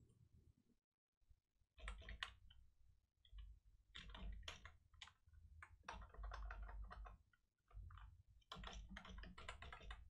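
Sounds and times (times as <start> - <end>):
keyboard typing: 3.9 - 7.2, 7.9 - 10.0.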